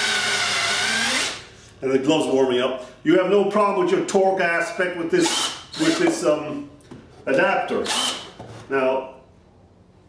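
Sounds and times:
cordless drill whining: 0:07.8 - 0:08.2.

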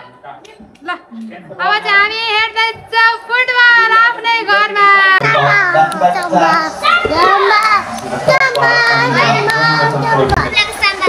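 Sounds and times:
child singing in a high voice: 0:05.2 - 0:11.0.

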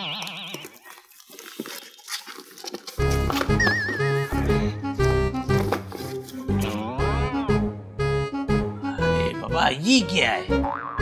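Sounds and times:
bouncy comic tune with bass: 0:06.5 - 0:11.0.

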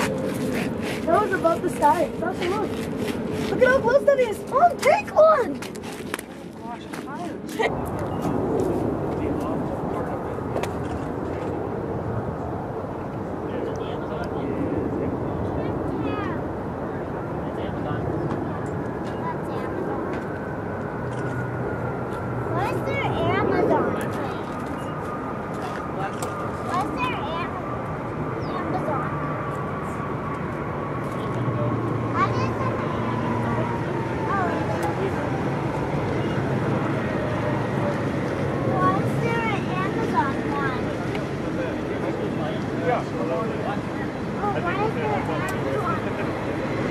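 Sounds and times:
jet engines rumbling: 0:00.0 - 0:46.9.

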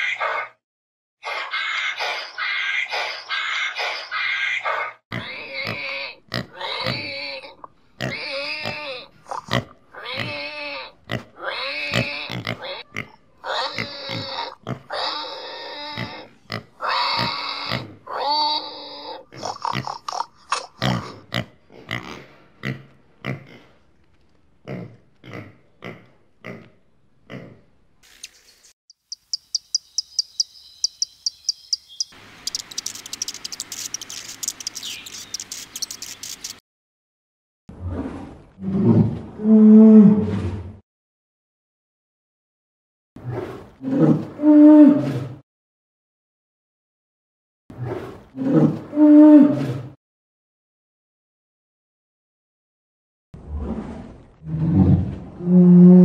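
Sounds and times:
pigs grunting and squealing: 0:01.2 - 0:23.8, 0:24.7 - 0:27.7
high rapid ticking: 0:29.0 - 0:36.6.

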